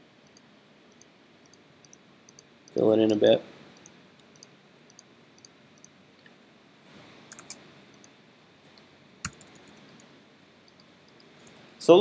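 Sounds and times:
computer mouse and keyboard clicks: 7.3 - 10.1.

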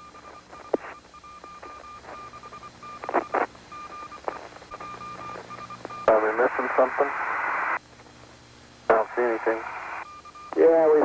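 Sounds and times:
electronic tone beeping: 0.0 - 7.0, 10.0 - 11.0
radio clicks: 0.3 - 7.8
radio channel hiss: 0.6 - 11.0
noise burst: 3.0 - 10.0.

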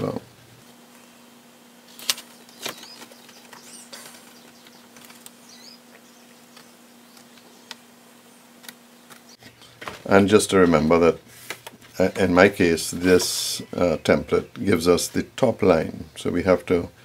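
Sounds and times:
steady faint hum: 0.0 - 17.0.

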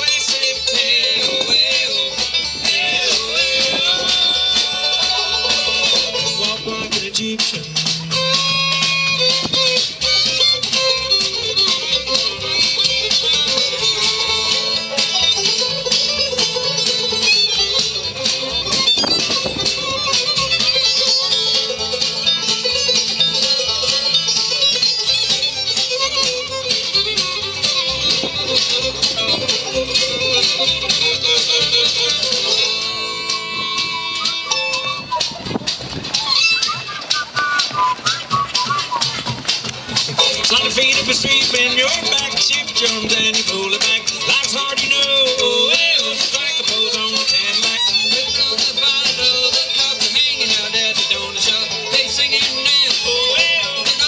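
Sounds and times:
bluegrass band playing: 0.0 - 54.0.

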